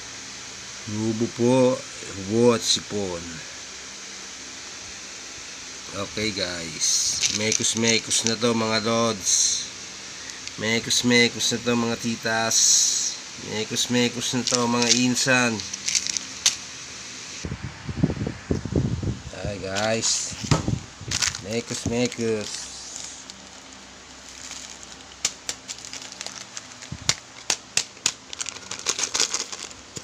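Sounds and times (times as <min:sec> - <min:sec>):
steady background hiss: 0:00.0 - 0:30.0.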